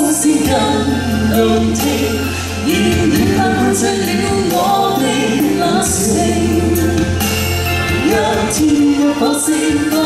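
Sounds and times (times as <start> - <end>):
man singing: 0.0 - 7.1, 7.9 - 10.0
instrumental backing: 0.0 - 10.0
woman singing: 0.0 - 10.0.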